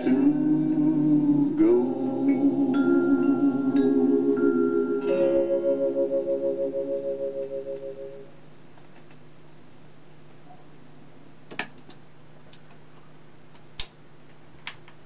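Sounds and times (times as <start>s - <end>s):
record music through speaker: 0.0s - 7.4s
steady low hum: 0.0s - 14.6s.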